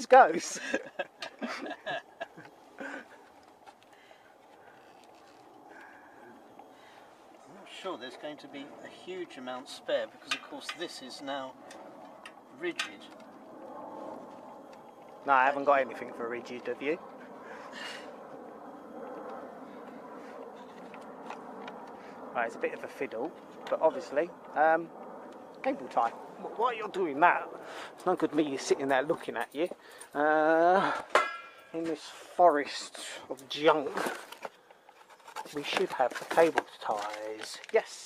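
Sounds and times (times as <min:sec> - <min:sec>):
steady low hum: 0:00.0 - 0:35.5.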